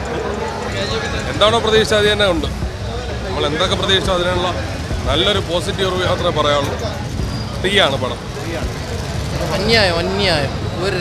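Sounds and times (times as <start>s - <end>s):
crowd and traffic rumble: 0.0s - 11.0s
man talking: 0.7s - 8.8s.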